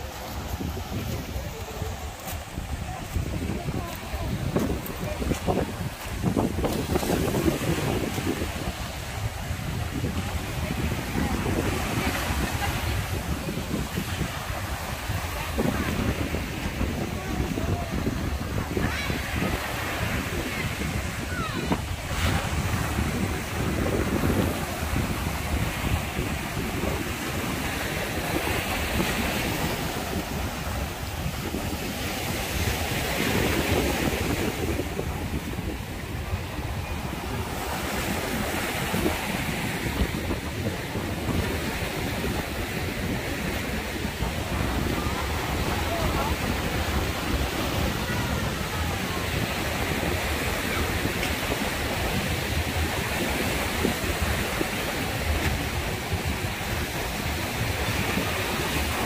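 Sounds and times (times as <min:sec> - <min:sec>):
sea waves breaking on beach: 0:00.0 - 0:59.0
wind buffeting microphone: 0:00.0 - 0:59.0.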